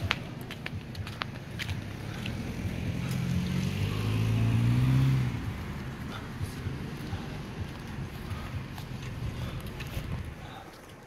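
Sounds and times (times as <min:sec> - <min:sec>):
motor vehicle engine hum: 0:00.0 - 0:11.0.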